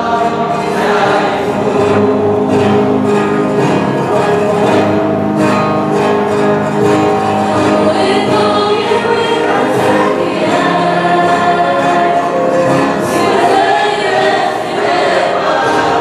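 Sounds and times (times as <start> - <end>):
group of people singing: 0.0 - 5.0, 6.8 - 16.0.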